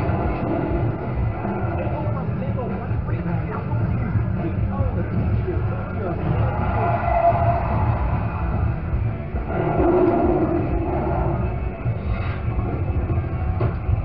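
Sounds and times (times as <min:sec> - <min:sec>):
music with heavy bass: 0:00.0 - 0:14.0.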